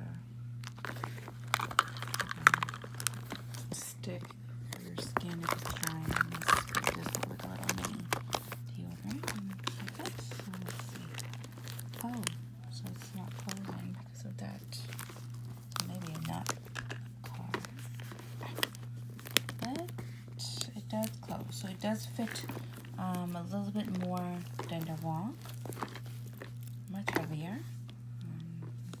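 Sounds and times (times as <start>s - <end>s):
steady low hum: 0.0s - 29.0s
bag rustling and crinkling: 0.6s - 28.0s.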